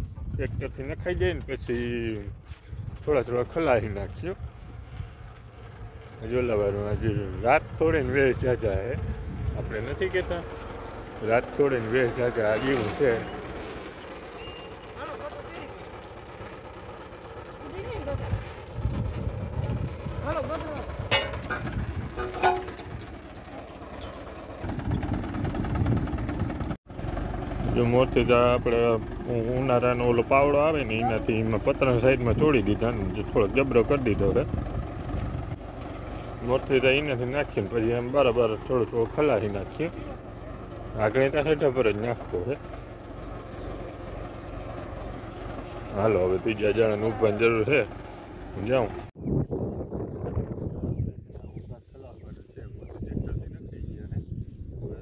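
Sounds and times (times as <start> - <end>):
tractor diesel engine running: 0.0 - 49.2.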